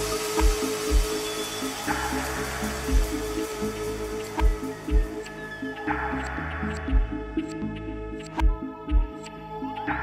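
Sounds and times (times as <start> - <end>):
ambient electronic synth music: 0.0 - 10.0.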